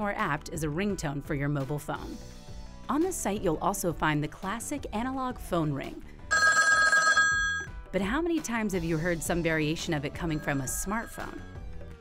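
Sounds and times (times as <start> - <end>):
telephone bell ringing: 6.3 - 7.7, 10.4 - 11.5.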